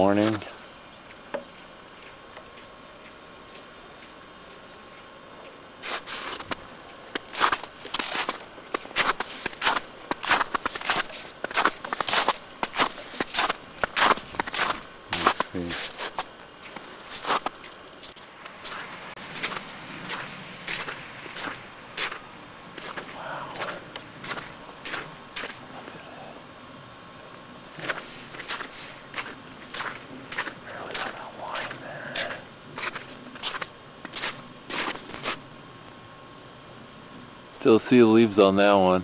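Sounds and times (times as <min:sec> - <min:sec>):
footsteps crunching through snow: 0:05.8 - 0:26.0, 0:27.3 - 0:35.4.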